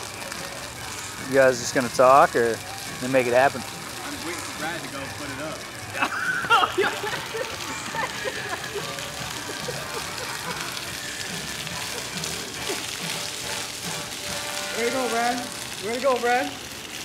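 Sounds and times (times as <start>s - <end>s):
fountain jets spraying water: 0.0s - 17.0s.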